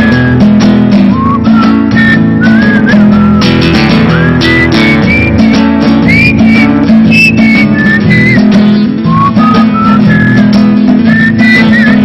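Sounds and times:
acoustic guitar strumming: 0:00.0 - 0:12.0
man whistling a melody: 0:00.0 - 0:12.0.

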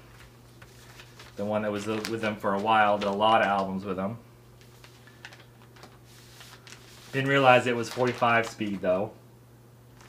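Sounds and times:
records and sleeves being handled: 0:00.0 - 0:03.8, 0:04.6 - 0:09.0.

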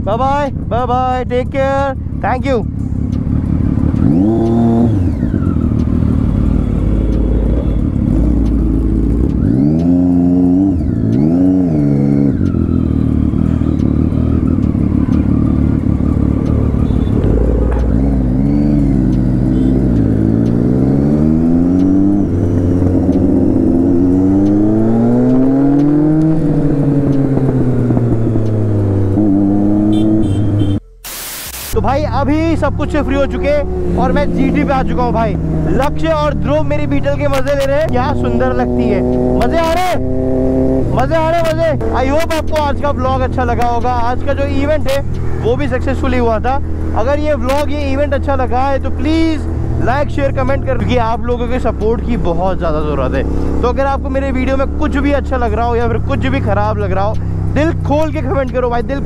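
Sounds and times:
motorcycle engine accelerating: 0:00.5 - 0:30.8, 0:31.7 - 0:59.0.

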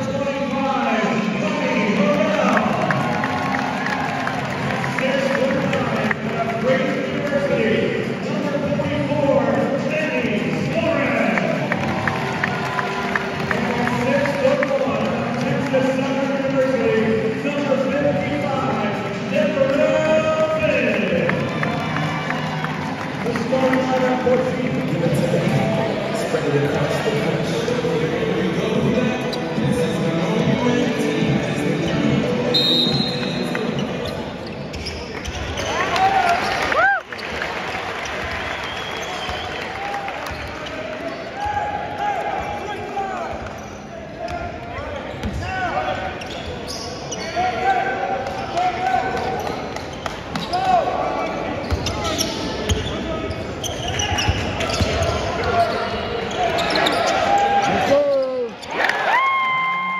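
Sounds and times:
sneaker squeaks: 0:31.8 - 0:37.3, 0:40.2 - 0:41.6, 0:43.3 - 0:58.8.

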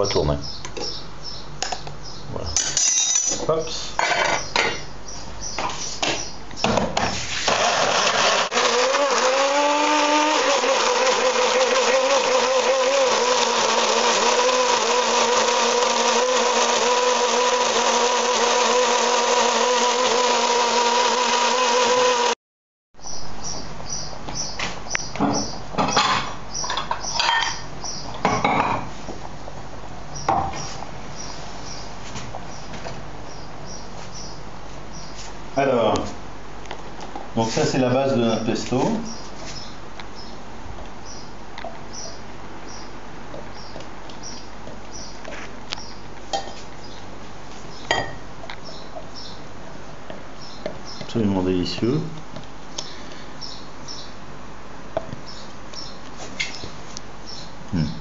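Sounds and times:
glass jar and lid clinking: 0:02.6 - 0:03.4
electric blender running: 0:07.4 - 0:22.4.

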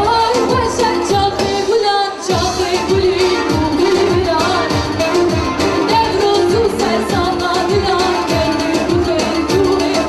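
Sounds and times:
woman singing into a microphone: 0:00.0 - 0:10.0
steady drum beat: 0:02.3 - 0:10.0.

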